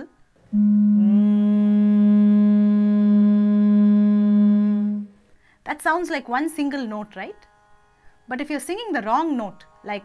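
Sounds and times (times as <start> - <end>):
woman humming a steady note: 0.0 - 5.2.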